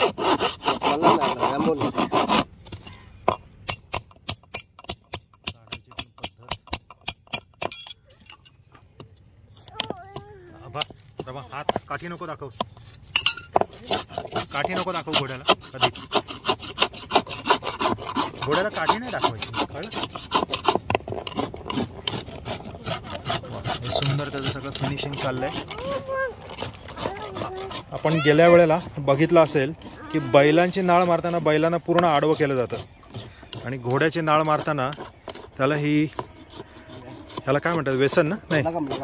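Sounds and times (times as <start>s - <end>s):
rasp filing hoof: 0.0s - 39.0s
hammer tapping nails: 3.3s - 7.9s.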